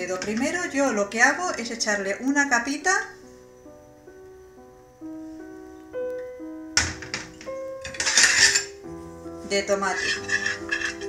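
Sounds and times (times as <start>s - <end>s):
held keyboard notes music: 0.0s - 11.0s.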